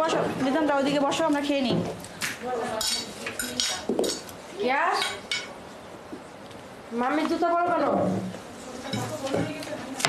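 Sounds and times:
dishes and cutlery clinking: 0:02.7 - 0:04.3, 0:04.9 - 0:05.6, 0:08.8 - 0:09.7.

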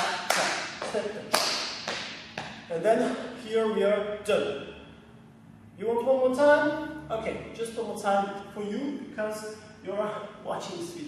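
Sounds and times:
sharp hand claps: 0:00.0 - 0:02.6.

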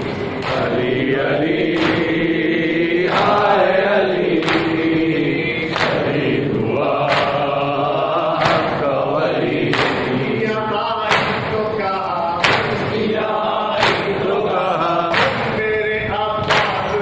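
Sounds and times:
men chanting together: 0:00.0 - 0:17.0
rhythmic chest-beating slaps: 0:00.0 - 0:17.0.

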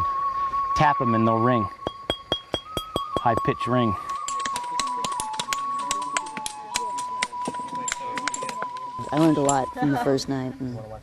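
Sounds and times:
steady high tone: 0:00.0 - 0:10.4
tools striking flint: 0:01.8 - 0:09.6.

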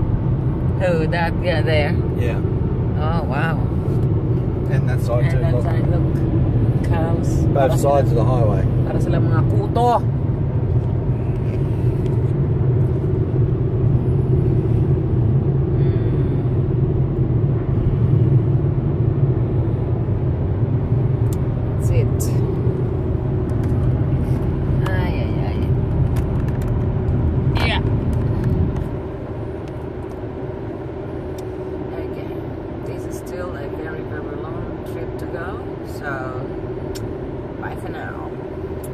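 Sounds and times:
car road and engine rumble: 0:00.0 - 0:38.9.

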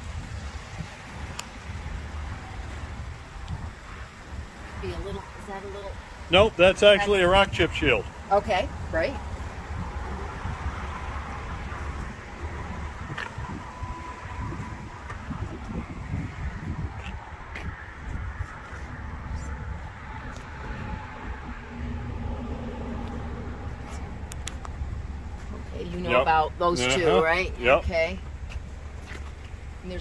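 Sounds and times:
low rumble on microphone: 0:08.7 - 0:26.7.

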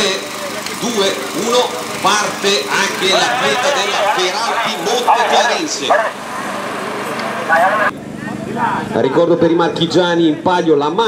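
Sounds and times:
vehicle passing on road: 0:01.2 - 0:09.0.

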